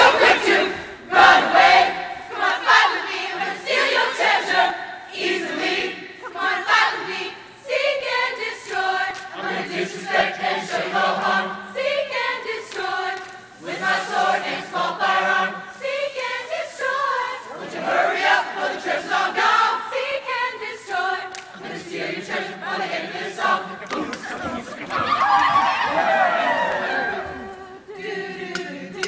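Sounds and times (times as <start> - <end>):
choir singing a cappella: 0.0 - 29.0.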